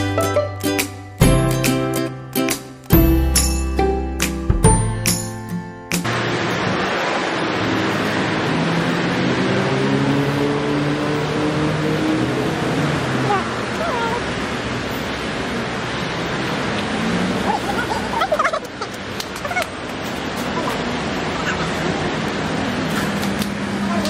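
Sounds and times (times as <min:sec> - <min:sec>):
traffic rushing: 0:00.0 - 0:24.0
vehicle engine humming: 0:00.0 - 0:24.0.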